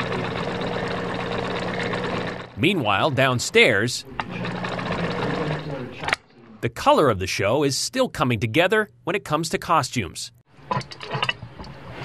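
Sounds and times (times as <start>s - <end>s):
sewing machine stitching: 0.0s - 2.6s, 3.2s - 6.2s.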